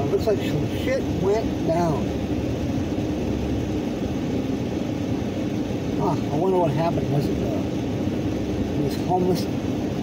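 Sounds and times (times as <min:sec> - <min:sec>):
car engine rumble inside cabin: 0:00.0 - 0:10.0.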